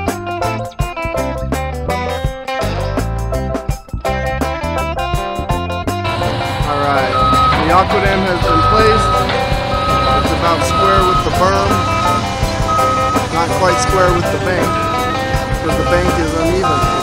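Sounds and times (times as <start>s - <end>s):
background music: 0.0s - 17.0s
excavator engines running: 6.0s - 17.0s
high travel alarm beep: 6.1s - 17.0s.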